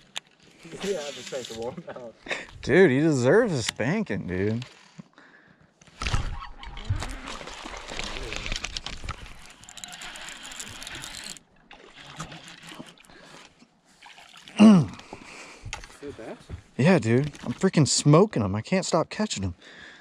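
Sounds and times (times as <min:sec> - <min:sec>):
water splashing and sloshing: 0:05.8 - 0:17.8
small clicks: 0:08.0 - 0:11.4.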